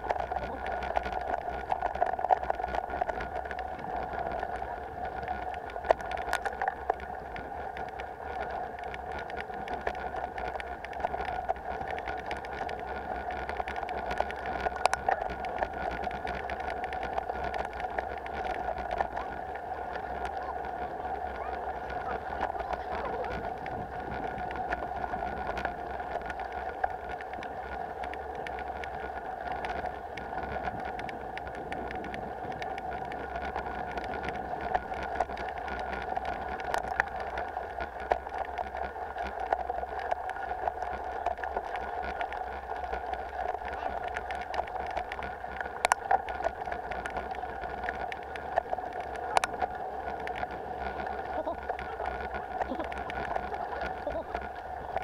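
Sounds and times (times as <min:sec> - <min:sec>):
bike rattling over stones: 0:00.0 - 0:55.0
bike rolling on dirt trail: 0:00.0 - 0:55.0.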